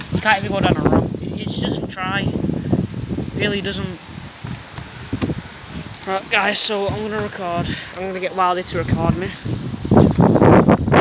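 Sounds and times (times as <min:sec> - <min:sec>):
wind gusts buffeting microphone: 0:00.0 - 0:11.0
wind hiss: 0:00.0 - 0:11.0.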